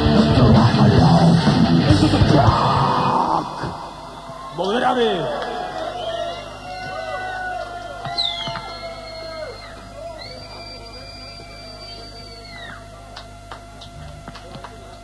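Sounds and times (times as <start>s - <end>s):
electric guitar feedback: 0.0s - 15.0s.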